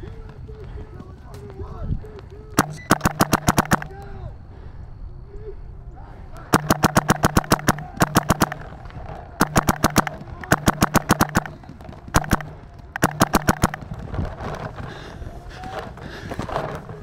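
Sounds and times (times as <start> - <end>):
low hum: 2.0 - 15.5
paintball marker firing rapidly: 2.6 - 4.0, 6.4 - 14.2.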